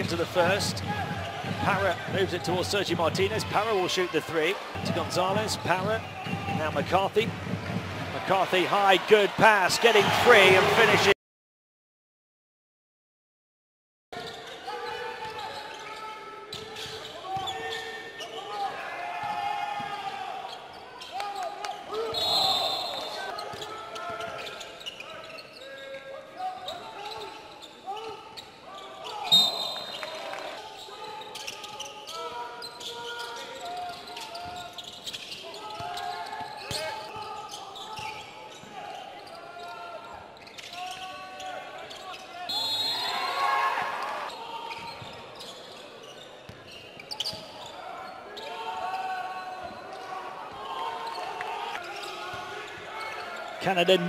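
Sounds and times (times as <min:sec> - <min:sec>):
referee whistle blasts: 0:22.1 - 0:23.2, 0:29.2 - 0:30.1, 0:42.5 - 0:43.4.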